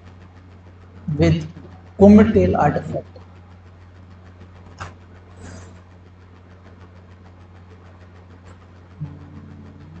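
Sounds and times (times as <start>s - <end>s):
low background hum: 0.0s - 10.0s
low steady tones: 0.0s - 10.0s.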